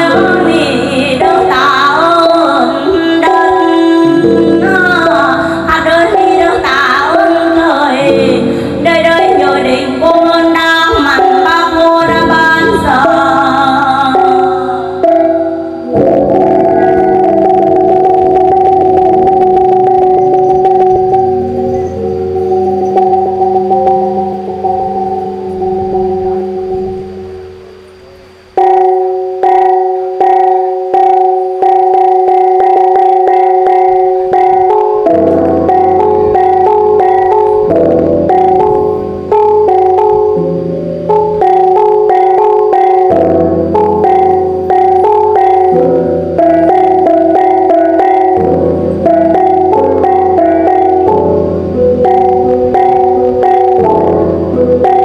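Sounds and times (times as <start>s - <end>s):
bronze gongs ringing: 0.0s - 55.0s.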